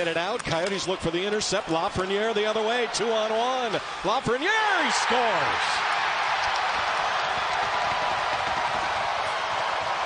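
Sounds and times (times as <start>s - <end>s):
arena crowd cheering: 0.0s - 10.0s.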